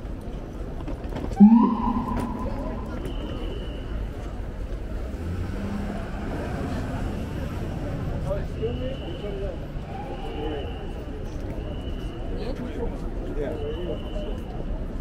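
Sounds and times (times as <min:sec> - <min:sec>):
traffic: 0:00.0 - 0:15.0
loud short pitched sound: 0:01.4 - 0:03.6
people talking: 0:01.4 - 0:03.9.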